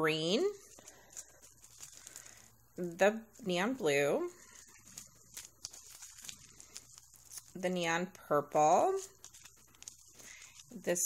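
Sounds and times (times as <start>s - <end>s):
plastic bags rustling and clicking: 0.6s - 10.9s.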